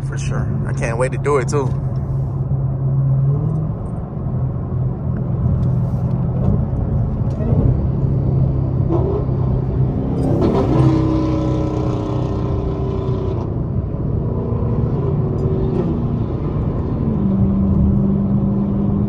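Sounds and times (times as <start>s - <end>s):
car engine drone from inside cabin: 0.0s - 19.0s
road noise: 0.0s - 19.0s.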